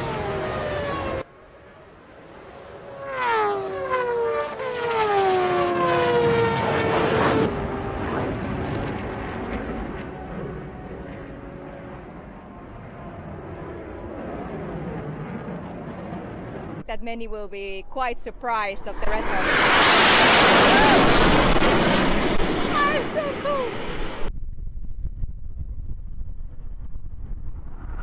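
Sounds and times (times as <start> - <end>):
racing engine passing at speed: 0.0 - 1.2, 2.0 - 11.9, 19.0 - 24.0
jet engine roar: 0.0 - 16.8, 17.6 - 24.4, 25.4 - 28.0.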